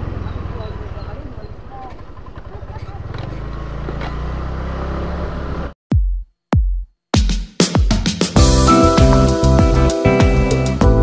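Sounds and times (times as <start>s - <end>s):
motorcycle engine riding: 0.0s - 5.8s
deep electronic drum hit: 8.4s - 11.0s.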